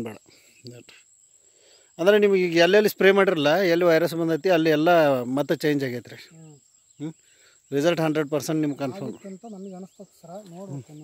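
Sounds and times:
crickets trilling: 0.0 - 11.0
man speaking: 2.0 - 11.0.

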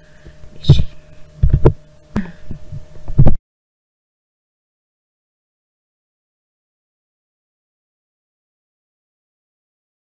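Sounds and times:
faint steady hum: 0.0 - 3.4
dull thumps and knocks: 0.7 - 1.8.

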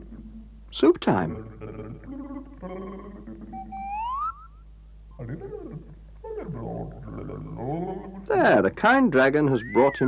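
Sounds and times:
slide-whistle glide: 3.6 - 4.6
warbling whistled calls: 3.6 - 4.7, 9.5 - 10.0.

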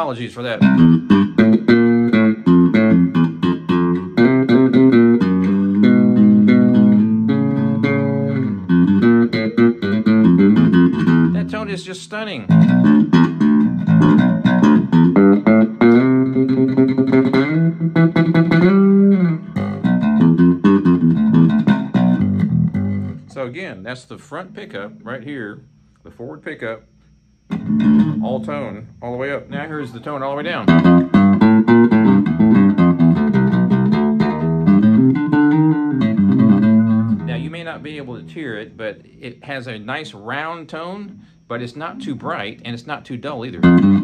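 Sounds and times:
electric bass plucked notes: 0.0 - 25.4, 27.4 - 44.0.

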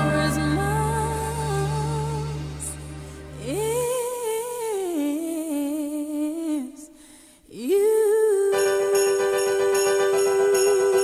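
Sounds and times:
woman singing long vowel: 0.0 - 2.3.

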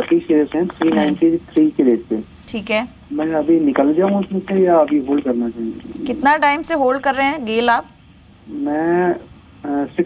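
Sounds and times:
man speaking over telephone: 0.0 - 2.2.

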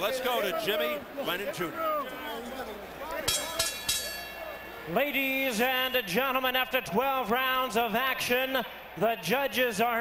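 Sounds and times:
arena crowd noise: 0.0 - 10.0
ringside bell struck: 3.3 - 4.4.

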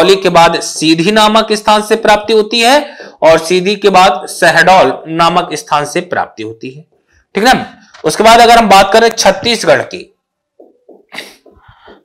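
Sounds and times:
person sniffing: 11.1 - 12.0.

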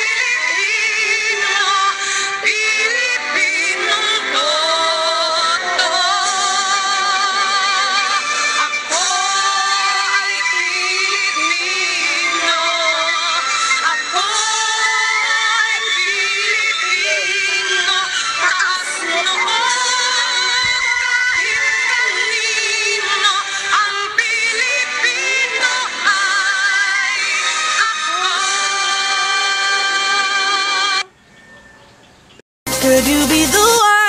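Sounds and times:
backing music: 0.0 - 31.0, 32.7 - 34.0
person singing with vibrato: 0.0 - 31.1, 32.7 - 34.0.

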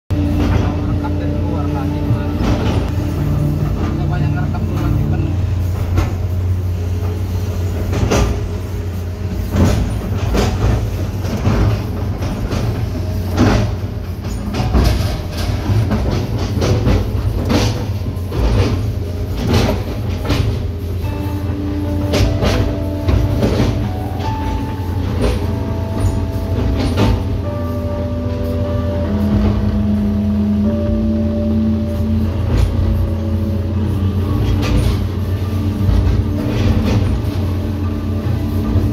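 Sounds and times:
excavator diesel engine running: 0.1 - 38.9
melodic tune: 0.1 - 38.9.

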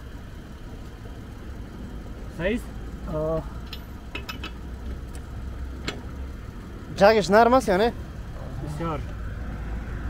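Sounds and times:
low engine hum: 0.0 - 10.0.

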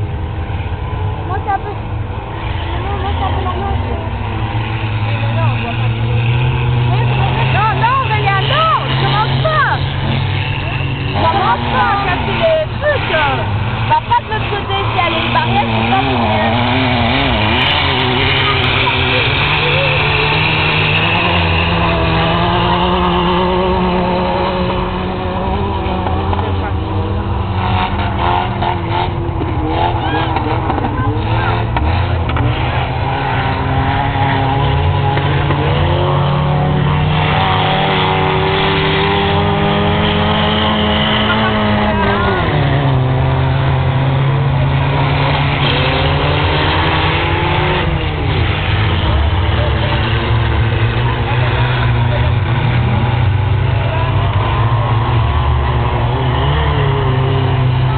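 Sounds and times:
race car engines revving: 0.0 - 57.9.

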